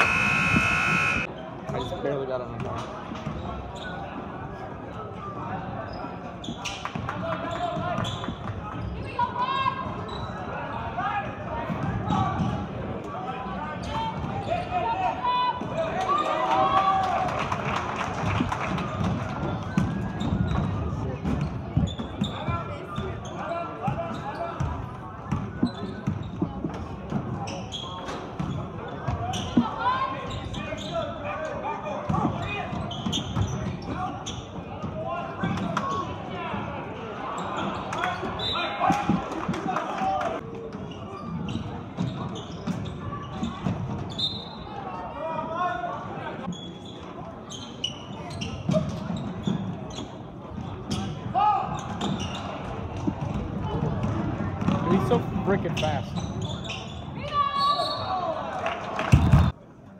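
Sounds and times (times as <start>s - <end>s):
crowd and player voices: 0.0s - 59.9s.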